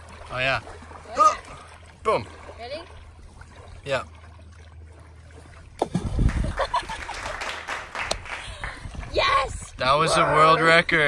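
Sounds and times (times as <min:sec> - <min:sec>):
wind buffeting microphone: 0:05.7 - 0:11.0.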